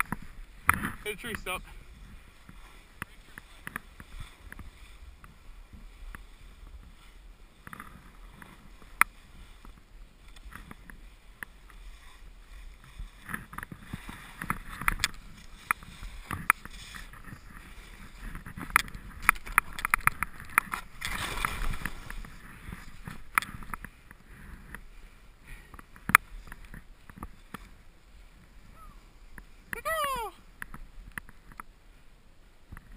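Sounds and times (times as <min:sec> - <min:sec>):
snow sliding: 0:00.0 - 0:31.1
skis moving through powder snow: 0:00.1 - 0:32.9.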